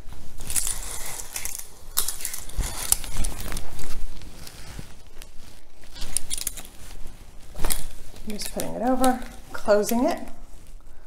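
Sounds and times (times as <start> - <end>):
shower curtain rustling: 0.0 - 11.0.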